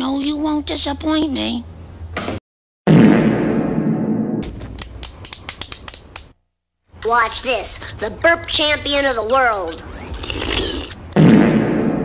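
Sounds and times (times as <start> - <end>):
reverberant fart sound effect: 2.9 - 4.5, 10.2 - 12.0.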